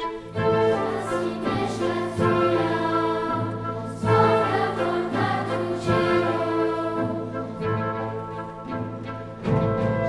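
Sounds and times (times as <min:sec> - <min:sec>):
children's choir singing: 0:00.0 - 0:09.0
symphony orchestra: 0:00.0 - 0:10.0.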